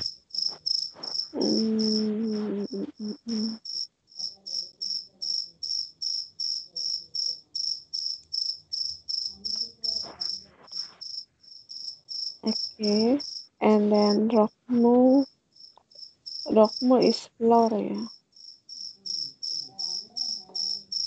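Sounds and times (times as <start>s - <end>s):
insect chirping: 0.0s - 17.1s, 18.1s - 21.0s.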